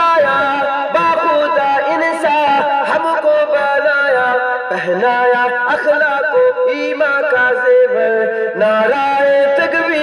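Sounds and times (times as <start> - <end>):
person singing devotional song: 0.0 - 10.0.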